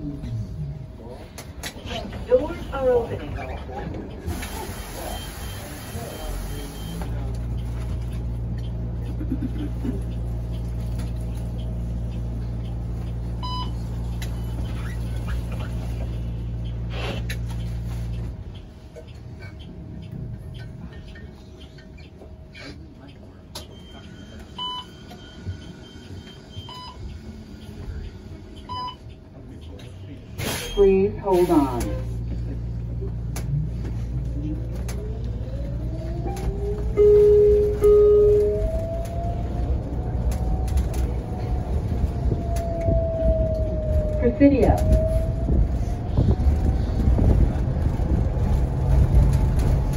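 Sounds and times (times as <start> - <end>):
bus machinery humming: 0.0 - 49.9
short electronic beeps: 13.4 - 13.8.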